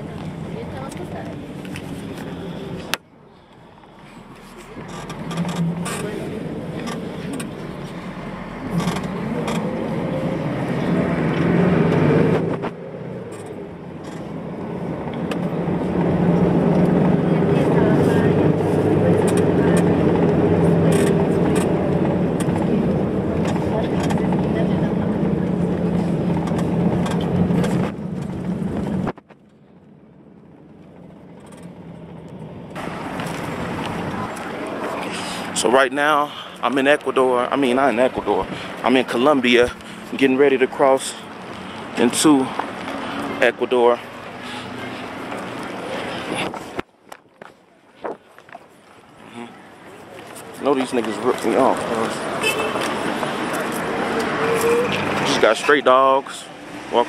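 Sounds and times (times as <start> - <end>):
bus engine accelerating: 0.0 - 46.8, 49.0 - 57.0
road noise inside bus: 0.0 - 57.0.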